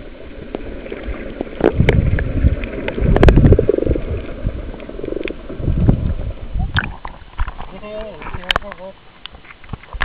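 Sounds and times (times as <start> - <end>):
underwater rumble of moving water: 0.0 - 10.0.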